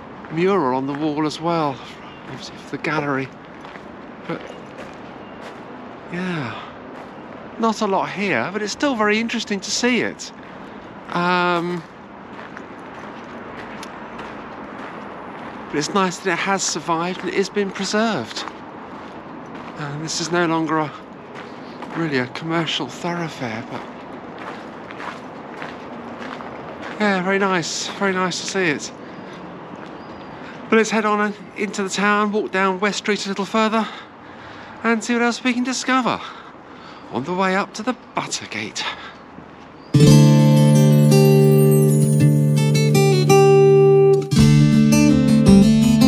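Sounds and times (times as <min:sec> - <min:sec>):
street ambience hiss: 0:00.0 - 0:46.0
footsteps on gravel: 0:02.8 - 0:05.8, 0:09.8 - 0:16.2, 0:16.8 - 0:22.8, 0:23.5 - 0:27.2.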